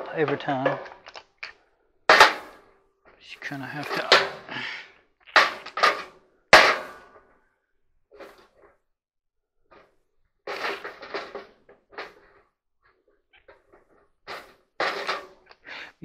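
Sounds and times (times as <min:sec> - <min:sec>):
wooden clamp clattering and knocking: 0:00.0 - 0:02.6, 0:03.6 - 0:07.3.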